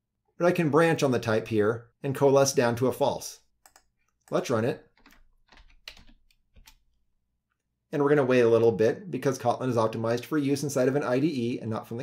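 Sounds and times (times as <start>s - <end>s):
computer keyboard key presses: 3.6s - 3.9s, 5.0s - 6.8s.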